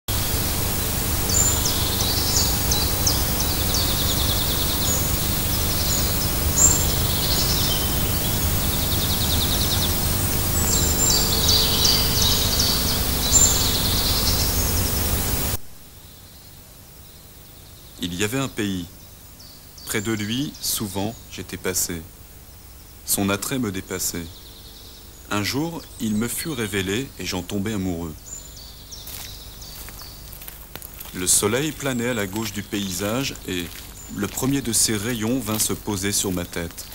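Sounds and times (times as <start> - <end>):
birds singing: 0.1 - 36.9
steady rushing hiss: 0.1 - 36.9.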